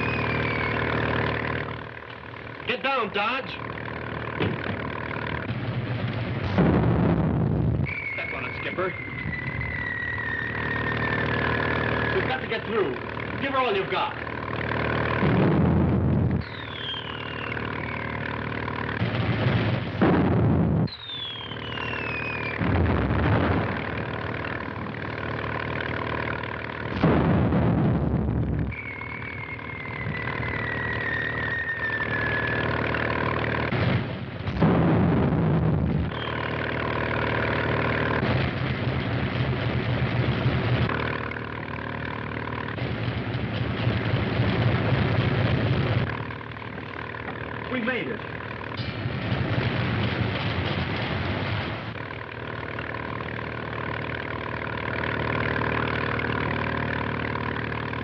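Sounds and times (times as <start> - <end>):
shells whistling down: 0.0 - 1.5, 7.8 - 12.5, 16.4 - 18.3, 20.8 - 22.7, 28.7 - 33.3, 36.1 - 36.6
boat engine droning: 0.0 - 58.0
explosions: 5.4 - 12.6, 15.0 - 17.5, 18.9 - 24.3, 26.9 - 32.4, 33.6 - 41.4, 42.6 - 46.6, 47.7 - 52.6.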